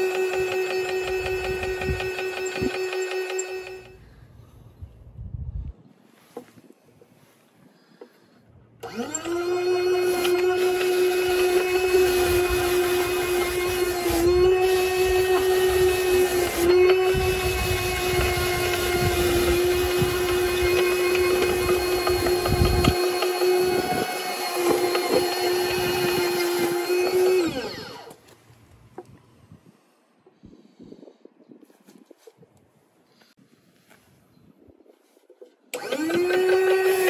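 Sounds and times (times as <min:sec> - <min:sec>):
motor spinning brush whine: 0:00.0 - 0:04.1, 0:08.8 - 0:28.2, 0:35.8 - 0:37.0.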